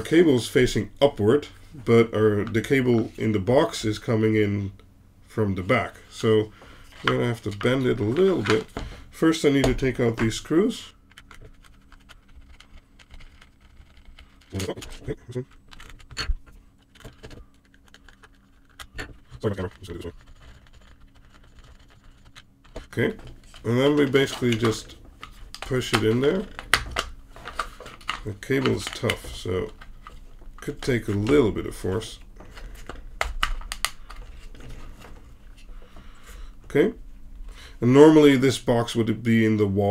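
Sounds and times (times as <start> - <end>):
handling noise: 6.6 - 36.1
clicks and scrapes of small parts: 11.0 - 31.4.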